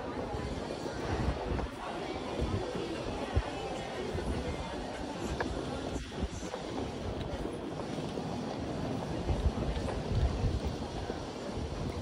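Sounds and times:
city ambience with low rumbling: 0:00.0 - 0:12.0.

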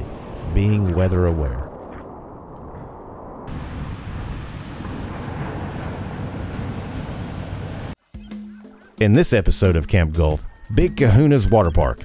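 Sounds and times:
ocean surf washing: 0:00.0 - 0:08.0
wind buffeting microphone: 0:00.0 - 0:08.0.

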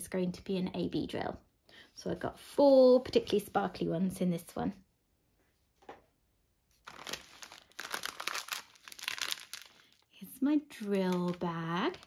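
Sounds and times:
plastic wrapping crinkling: 0:06.7 - 0:12.0.

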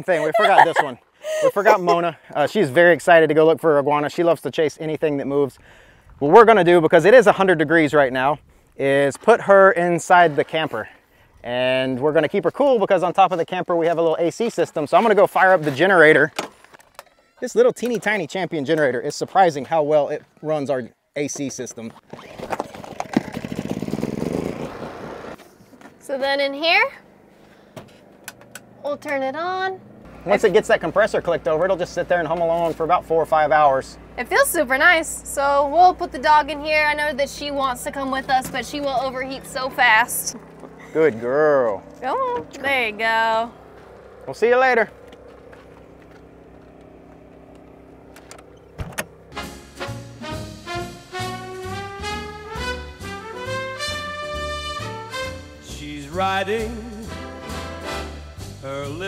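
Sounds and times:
generator pull-start: 0:22.0 - 0:26.0, 0:43.7 - 0:50.1
generator engine running: 0:22.5 - 0:59.0
brass swing music: 0:49.3 - 0:59.0.

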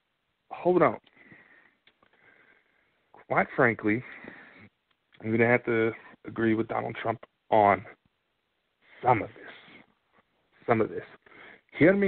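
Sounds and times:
person sniffing: 0:08.9 - 0:09.9.

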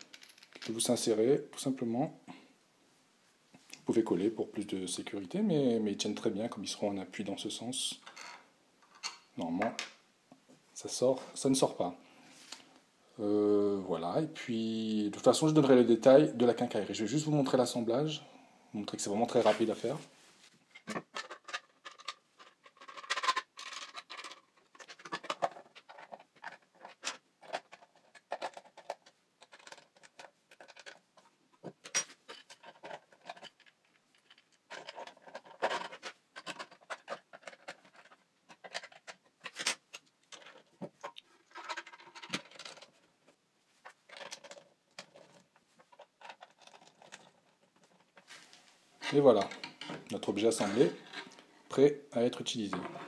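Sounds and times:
plastic parts clicking and tapping: 0:20.8 - 0:48.3.

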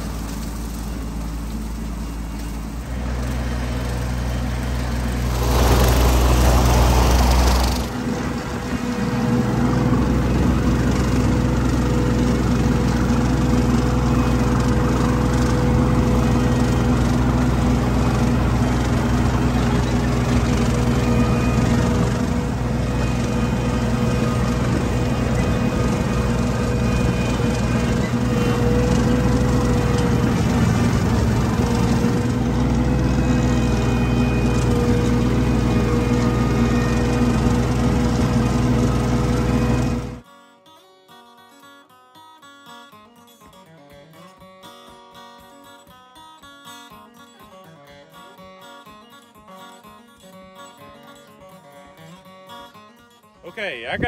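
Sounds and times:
tractor engine running: 0:00.0 - 0:40.2
soft guitar music: 0:00.0 - 0:54.0.

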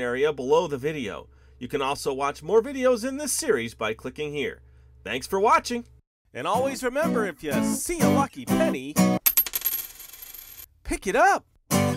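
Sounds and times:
coin bouncing and ringing: 0:09.2 - 0:10.7.

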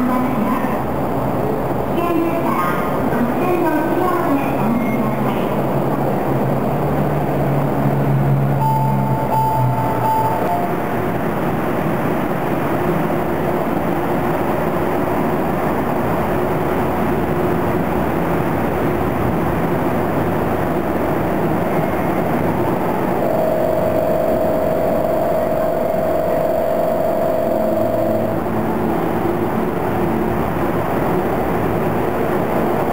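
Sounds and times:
monorail train rumble: 0:00.0 - 0:32.9
brief whining tone: 0:08.6 - 0:11.0, 0:23.2 - 0:28.5.

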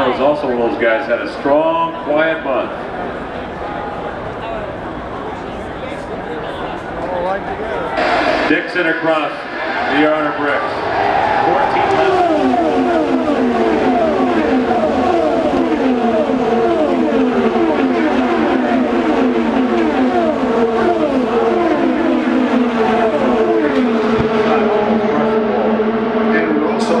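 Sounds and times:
race cars passing at speed: 0:08.0 - 0:27.0.

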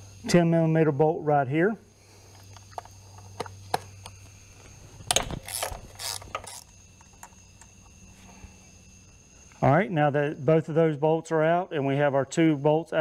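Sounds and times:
faint steady hum: 0:00.0 - 0:13.0
ratchet clicking: 0:05.1 - 0:07.7.

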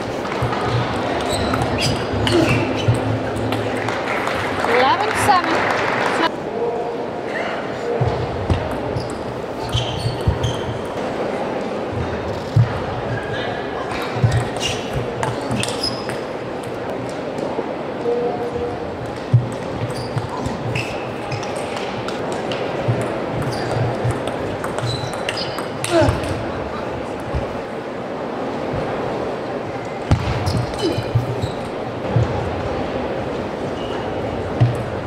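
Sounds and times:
hall background noise: 0:00.0 - 0:35.0
short high squeaks: 0:01.2 - 0:03.5, 0:09.0 - 0:10.8.

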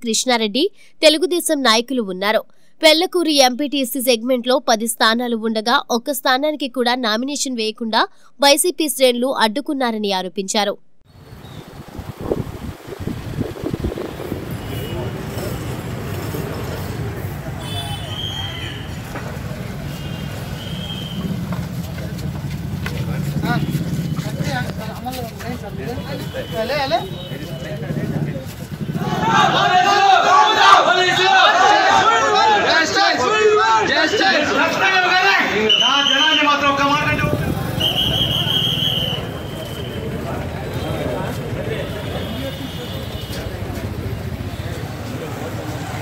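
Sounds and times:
vehicle engine rumbling: 0:11.1 - 0:26.5, 0:27.1 - 0:29.6
people talking indistinctly: 0:21.7 - 0:46.0.

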